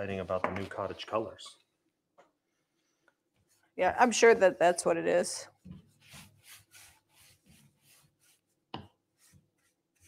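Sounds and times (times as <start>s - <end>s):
paintbrush strokes: 2.8s - 4.8s, 5.5s - 10.0s.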